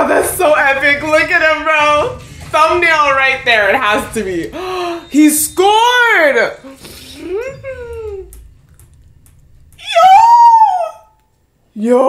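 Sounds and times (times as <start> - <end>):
woman saying ooh: 9.8 - 11.2
woman squealing: 9.8 - 11.2.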